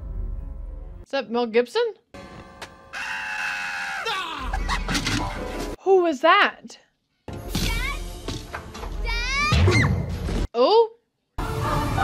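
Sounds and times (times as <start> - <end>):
film background score: 0.0 - 12.0.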